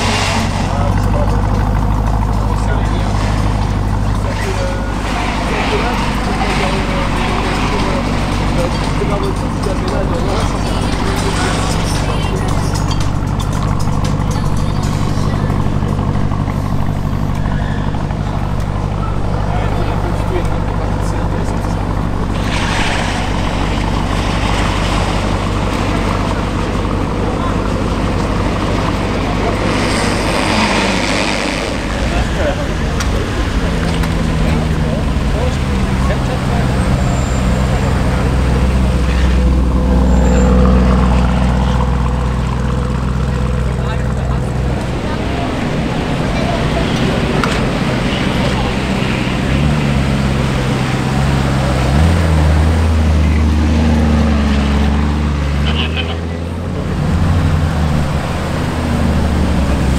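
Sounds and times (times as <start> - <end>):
car engine idling: 0.0 - 59.9
car pulling away: 0.0 - 59.9.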